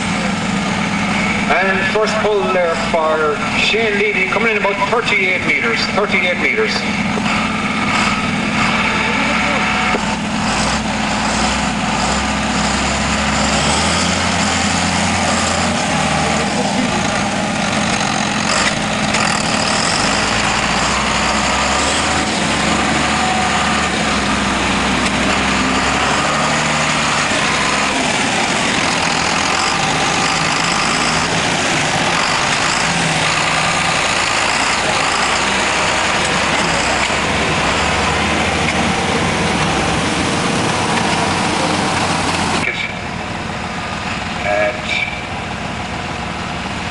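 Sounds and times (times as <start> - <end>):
tractor diesel engine running: 0.0 - 46.9.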